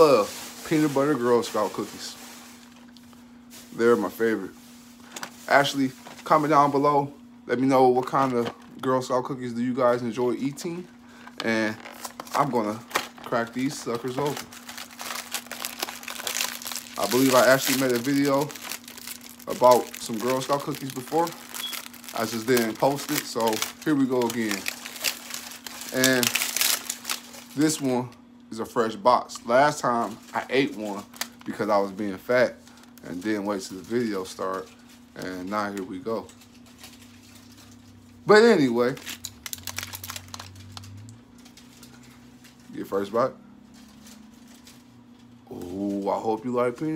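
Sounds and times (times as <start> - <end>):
plastic tray crinkling: 10.6 - 27.8, 38.9 - 42.1.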